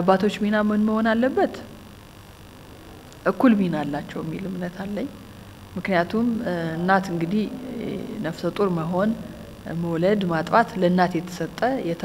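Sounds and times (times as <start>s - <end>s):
woman speaking: 0.0s - 1.7s, 3.3s - 5.2s, 5.8s - 12.0s
low electrical hum: 0.0s - 12.0s.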